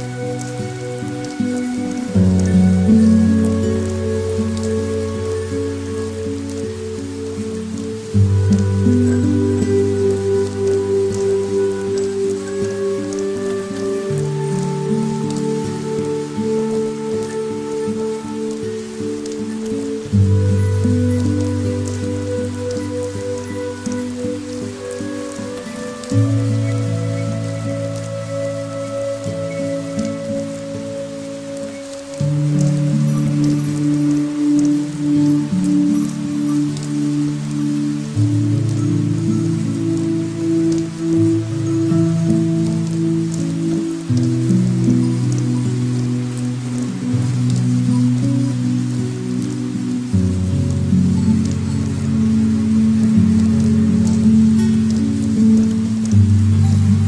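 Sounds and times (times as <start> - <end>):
rain drop ticks: 0.0 - 57.0
slow held music chords: 0.0 - 57.0
steady rain falling: 0.0 - 57.0.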